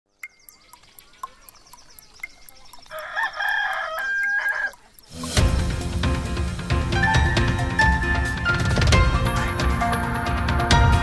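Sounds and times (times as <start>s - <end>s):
clock ticking: 0.1s - 5.6s
rooster crowing: 2.9s - 4.8s
loud theme music: 5.1s - 11.0s.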